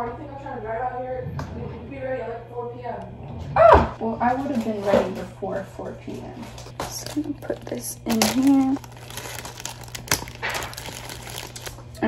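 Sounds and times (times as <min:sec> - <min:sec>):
plastic bag crinkling: 0:06.4 - 0:12.0.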